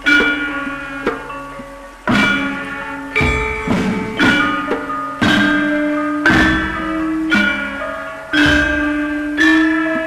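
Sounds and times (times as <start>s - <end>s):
metallophones struck in slow melody: 0.0s - 10.0s.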